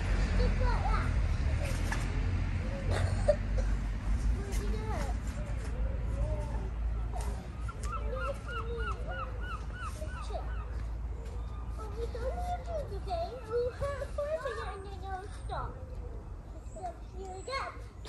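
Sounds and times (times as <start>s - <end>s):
distant children's voices: 0.0s - 18.0s.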